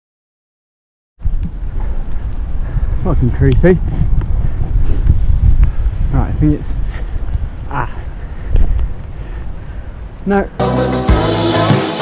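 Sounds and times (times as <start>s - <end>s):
wind buffeting microphone: 1.2s - 10.6s.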